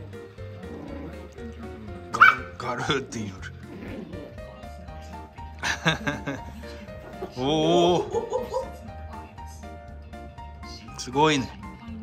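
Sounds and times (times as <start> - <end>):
small dog yipping: 2.2 - 2.9.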